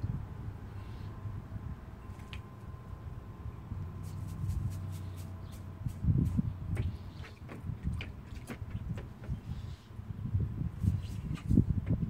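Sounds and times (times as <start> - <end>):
water splashing: 4.1 - 9.5.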